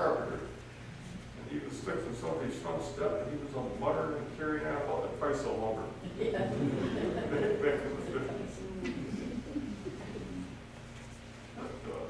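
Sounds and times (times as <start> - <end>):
low indistinct voices: 5.6 - 10.8
soft chuckling: 6.0 - 10.6.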